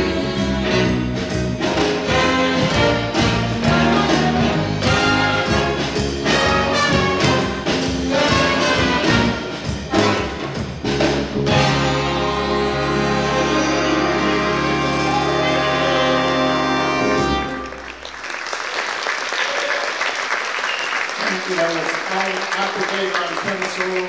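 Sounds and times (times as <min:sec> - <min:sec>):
big band playing jazz: 0:00.0 - 0:24.0.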